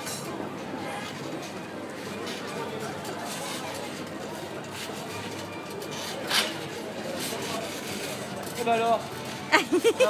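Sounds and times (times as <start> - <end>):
indistinct background chatter: 0.0 - 10.0.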